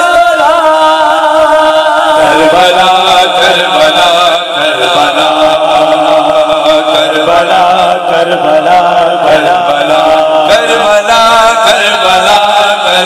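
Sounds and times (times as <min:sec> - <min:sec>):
amplified voice chanting lament: 0:00.0 - 0:13.0.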